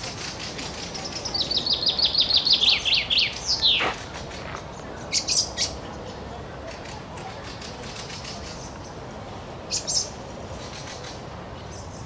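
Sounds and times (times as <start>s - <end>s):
songbird singing: 0.0s - 12.0s.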